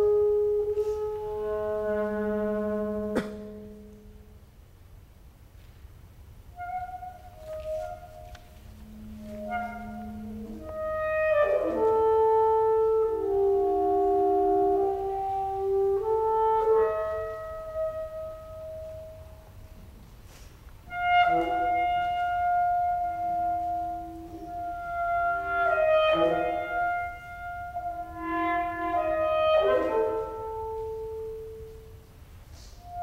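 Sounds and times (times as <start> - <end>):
alto saxophone long note: 0.0 - 4.4, 6.6 - 33.0.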